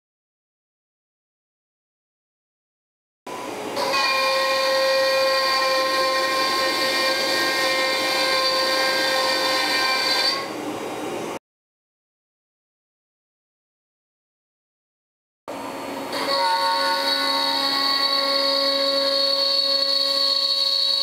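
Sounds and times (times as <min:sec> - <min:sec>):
router spindle whine: 0:15.5 - 0:21.0.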